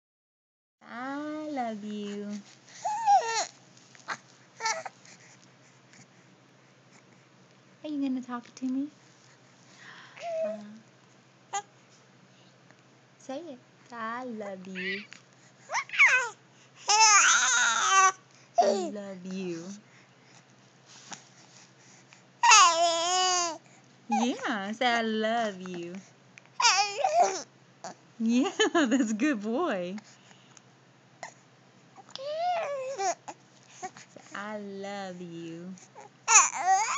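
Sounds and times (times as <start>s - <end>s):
baby high-pitched vocal sound: 2.8s - 3.5s, 14.7s - 19.0s, 22.4s - 24.5s, 26.6s - 27.5s, 32.0s - 33.9s, 36.0s - 36.9s.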